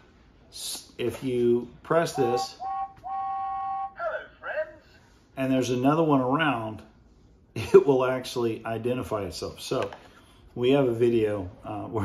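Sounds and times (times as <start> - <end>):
toy speaker held tone: 2.1 - 4.7
high-pitched toy voice: 2.1 - 4.8.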